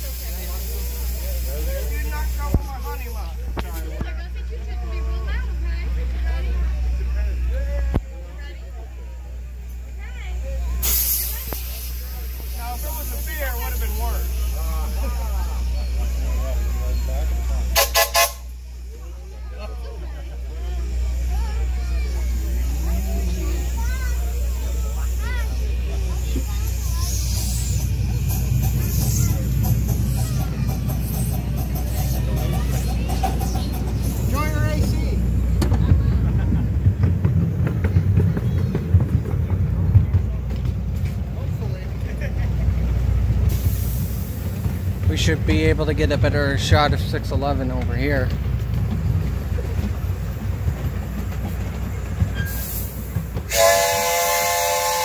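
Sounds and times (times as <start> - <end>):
crowd voices: 0.0 - 55.0
ride car rumbling along track: 0.0 - 55.0
train whistle toots: 17.7 - 18.6, 53.4 - 55.0.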